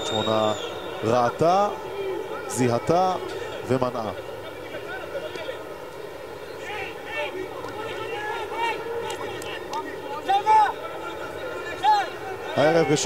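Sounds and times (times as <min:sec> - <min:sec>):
men shouting and calling out: 0:06.5 - 0:13.0.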